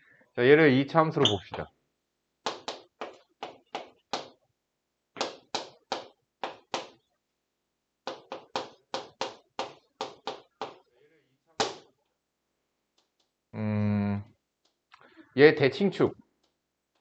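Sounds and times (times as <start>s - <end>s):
chalk tapping on chalkboard: 2.4s - 4.4s, 5.2s - 7.0s, 8.1s - 10.9s.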